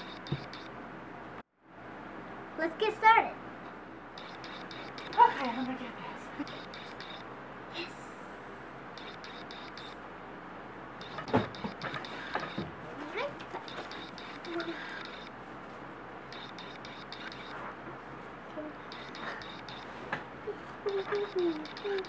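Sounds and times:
steady background noise: 0:00.0 - 0:22.0
girl's playful vocal sounds: 0:20.5 - 0:22.0.

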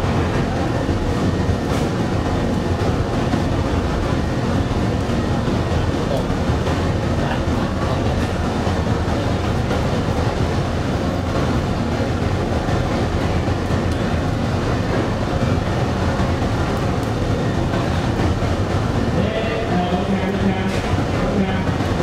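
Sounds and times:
furnace burning low rumble: 0:00.0 - 0:22.0.

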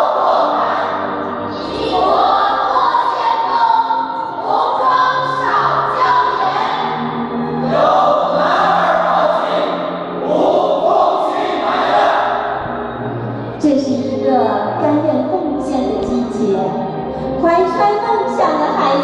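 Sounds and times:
choir singing: 0:00.0 - 0:13.4
musical accompaniment: 0:00.0 - 0:19.0.

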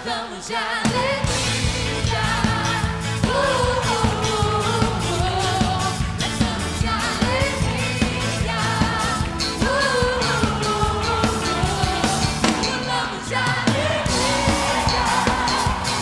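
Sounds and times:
female singers: 0:00.0 - 0:16.0
band with steady drum beat: 0:00.9 - 0:16.0.

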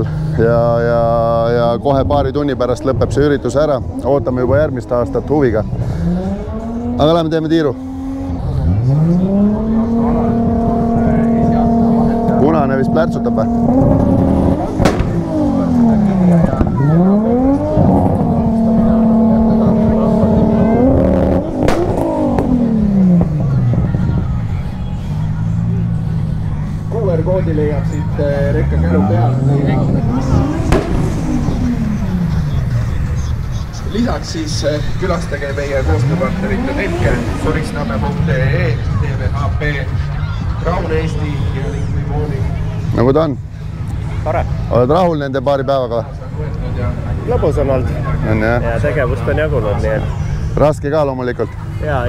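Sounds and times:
car engine revving: 0:00.0 - 0:52.0
steady low rumble: 0:09.0 - 0:44.7.

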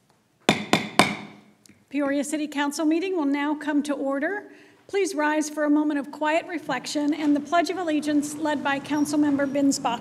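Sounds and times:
gavel knocks: 0:00.5 - 0:01.4.

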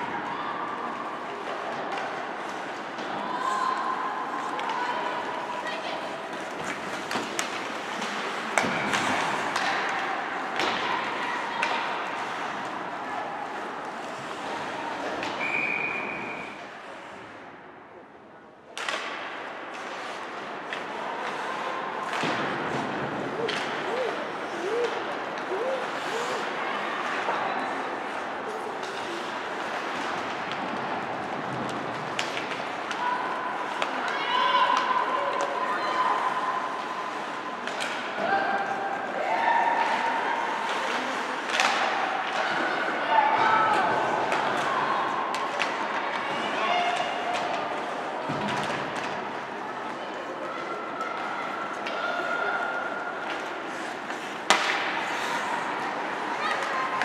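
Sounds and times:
hockey sticks clacking: 0:00.9 - 0:16.1, 0:18.7 - 0:57.0
skates scraping on ice: 0:01.0 - 0:15.4, 0:19.2 - 0:35.6, 0:38.7 - 0:49.5, 0:53.2 - 0:57.0.

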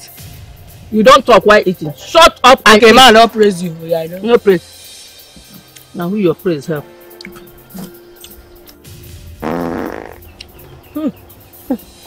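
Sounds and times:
soft background music: 0:00.0 - 0:12.0
loud fart: 0:09.4 - 0:10.3.

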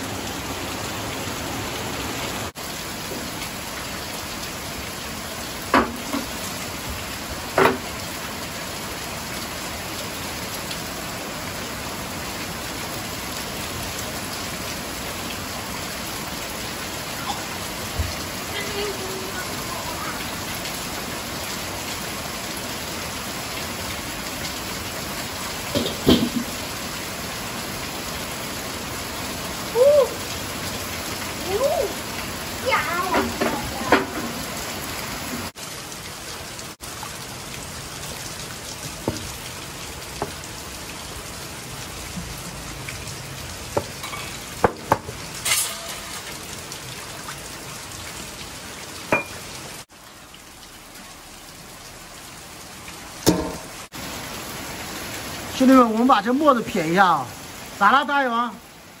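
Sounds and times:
steady rain falling: 0:00.0 - 0:59.0
metal utensil knocking wok: 0:53.3 - 0:53.7.

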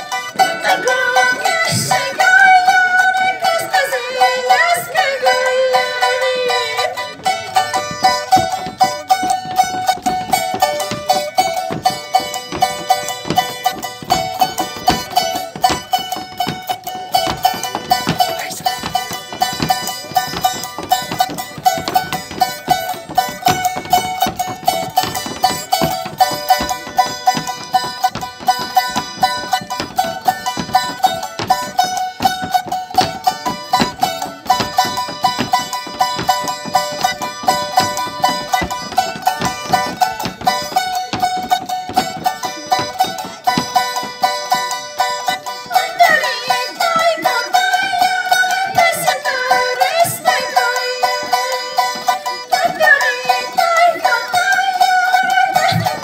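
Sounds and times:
small stringed instrument strummed: 0:00.0 - 0:56.0
woman singing: 0:00.4 - 0:07.1, 0:45.5 - 0:56.0.

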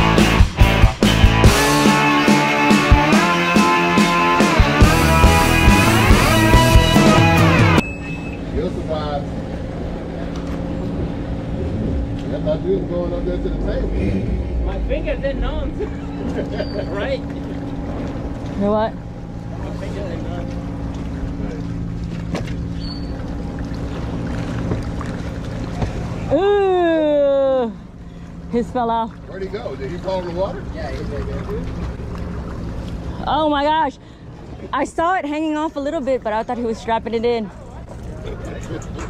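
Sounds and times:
jet ski engine idling: 0:03.0 - 0:39.0.

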